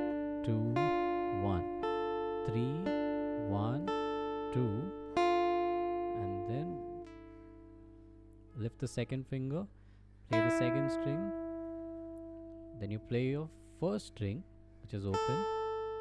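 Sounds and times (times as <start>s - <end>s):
acoustic guitar picking notes: 0.0s - 9.7s, 10.3s - 16.0s.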